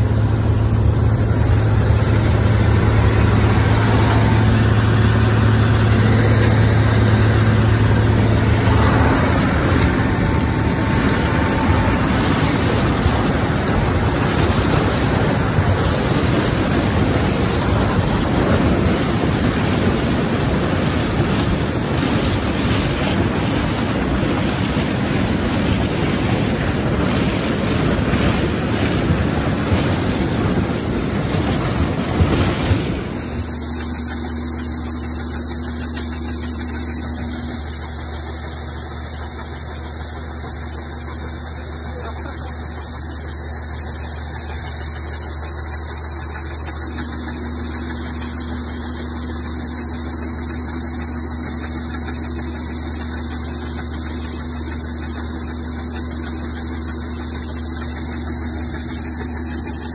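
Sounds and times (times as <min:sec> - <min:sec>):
auger pouring corn: 0:00.0 - 0:59.9
combine harvester running: 0:00.0 - 0:59.9
diesel engine drone: 0:00.0 - 0:59.9.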